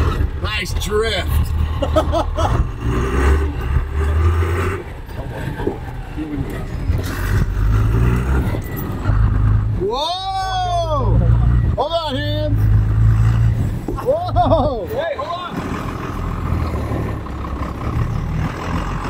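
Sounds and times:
vehicle engine rumble: 0.0s - 19.0s.

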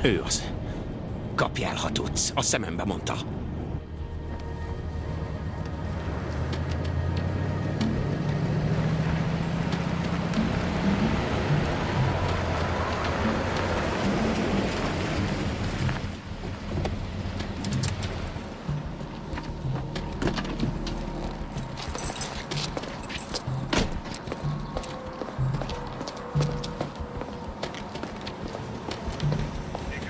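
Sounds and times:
low background music: 0.0s - 30.0s
car engine driving: 3.3s - 30.0s.

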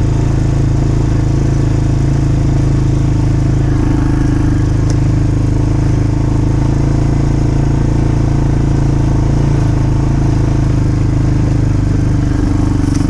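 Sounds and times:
atv engine running: 0.0s - 13.0s.

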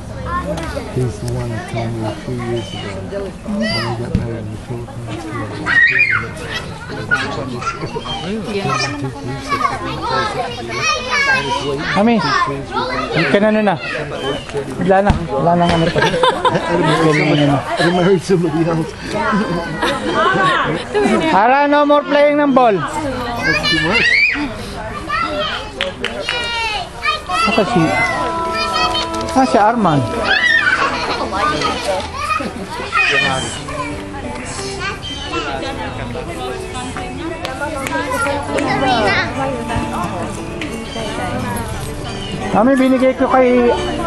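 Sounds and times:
children shouting at play: 0.0s - 14.5s, 15.6s - 18.1s, 22.0s - 35.7s
adult chatter: 0.0s - 44.0s.

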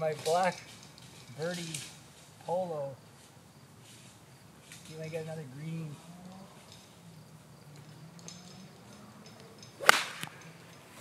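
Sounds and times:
golf iron striking ball: 9.3s - 10.6s.

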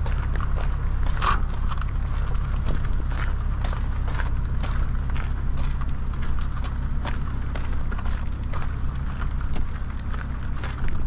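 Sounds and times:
footsteps on wet gravel: 0.0s - 11.0s
low rumble: 0.0s - 11.0s.

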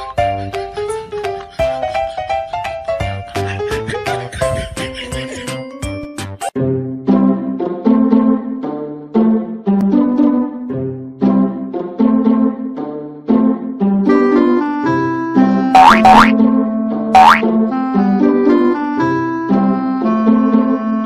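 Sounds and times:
playful keyboard music: 0.0s - 21.0s.

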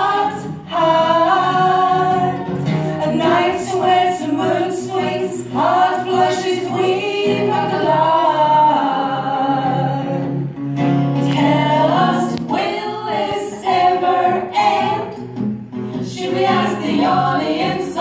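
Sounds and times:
women singing in harmony: 0.0s - 10.5s, 11.2s - 18.0s
acoustic guitar: 0.0s - 18.0s.

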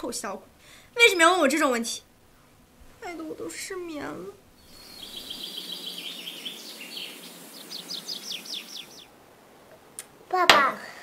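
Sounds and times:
songbird singing: 4.0s - 9.2s.

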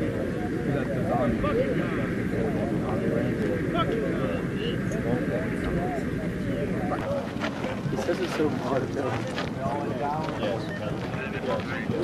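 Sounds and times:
steady low rumble: 0.0s - 12.0s
voices talking indistinctly: 0.0s - 12.0s.

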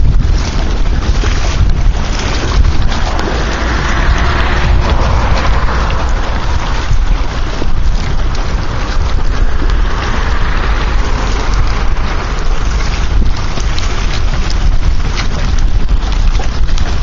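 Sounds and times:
water lapping and splashing: 0.0s - 17.0s
wind buffeting microphone: 0.0s - 17.0s.

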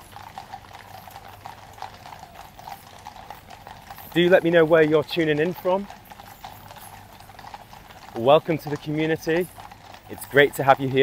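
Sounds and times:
horse hooves on paved road: 0.0s - 11.0s.

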